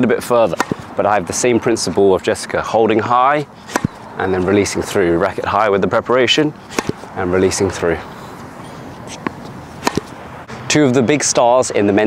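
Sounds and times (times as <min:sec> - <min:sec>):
racket hitting ball: 0:00.4 - 0:00.9, 0:03.6 - 0:05.5, 0:06.6 - 0:07.8, 0:08.9 - 0:10.2
tennis ball bouncing on court: 0:00.5 - 0:00.8, 0:03.7 - 0:04.0, 0:06.7 - 0:07.6, 0:09.0 - 0:10.2.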